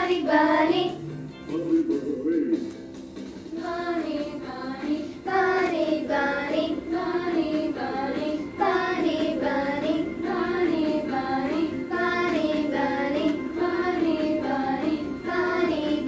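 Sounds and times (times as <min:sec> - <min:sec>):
children singing: 0:00.0 - 0:01.0, 0:03.6 - 0:16.0.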